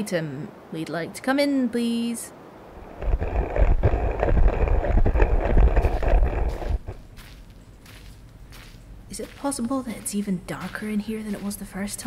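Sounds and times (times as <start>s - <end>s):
deep rumble with crackling: 2.8s - 7.2s.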